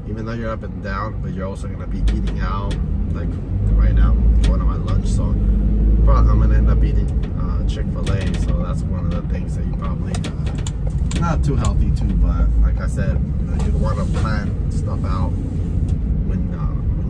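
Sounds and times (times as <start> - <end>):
van engine and road rumble: 0.0 - 17.0.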